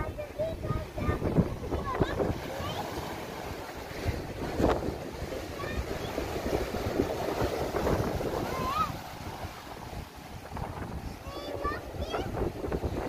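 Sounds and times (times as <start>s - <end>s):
waves breaking on rocky shore: 0.0s - 13.0s
wind rumbling on microphone: 0.0s - 13.0s.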